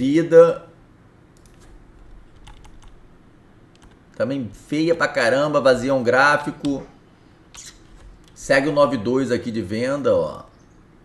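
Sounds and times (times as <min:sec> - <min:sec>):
computer keyboard keystrokes: 0:01.4 - 0:03.0, 0:03.7 - 0:04.0.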